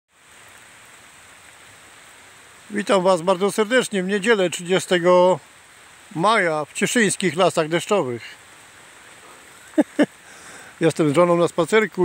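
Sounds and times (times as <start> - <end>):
light rain on leaves: 0.1 - 12.0.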